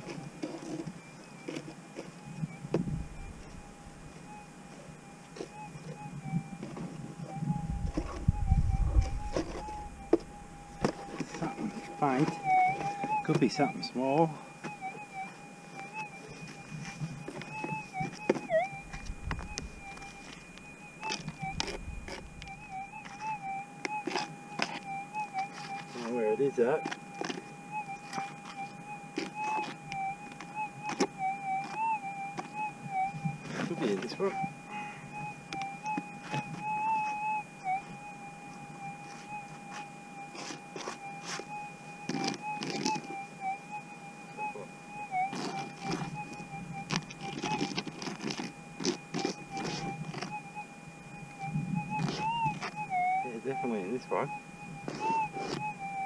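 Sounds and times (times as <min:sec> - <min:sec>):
metal detector tone: 0:05.4 - 0:38.0, 0:38.8 - 0:56.0
dirt and gravel crackling rustles: 0:45.1 - 0:50.5.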